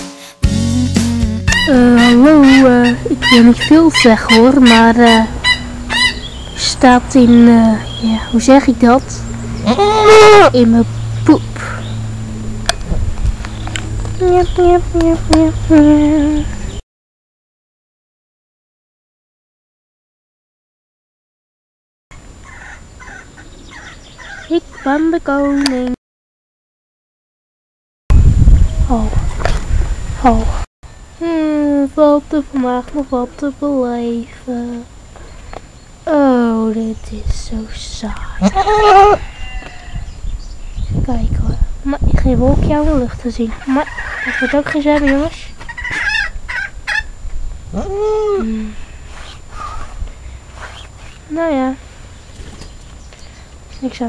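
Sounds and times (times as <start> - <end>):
rising animal call: 38.4 - 40.1, 45.8 - 50.0.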